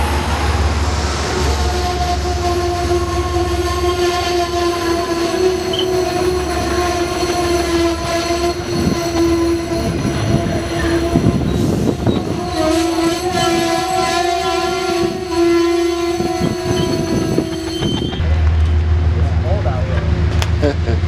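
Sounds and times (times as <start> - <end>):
train wheels rumbling: 0.0 - 21.0
train brakes squealing: 1.7 - 18.3.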